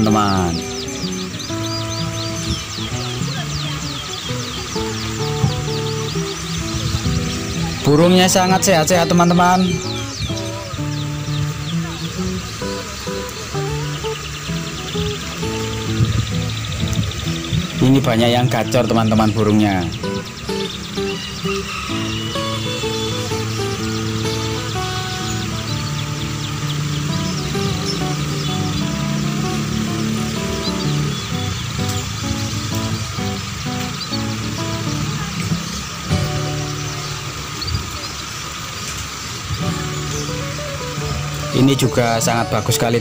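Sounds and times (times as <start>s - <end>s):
background music: 0.0s - 37.6s, 39.6s - 43.0s
canaries chirping and singing: 0.0s - 43.0s.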